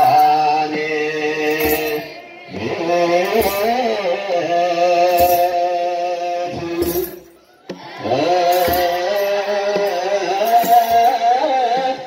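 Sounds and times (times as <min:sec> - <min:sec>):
children's choir chanting: 0:00.0 - 0:12.0.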